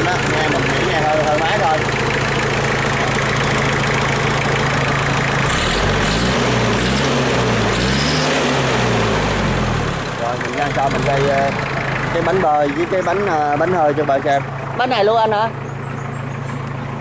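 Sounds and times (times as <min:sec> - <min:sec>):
tractor diesel engine idling: 0:00.0 - 0:07.8, 0:08.9 - 0:17.0.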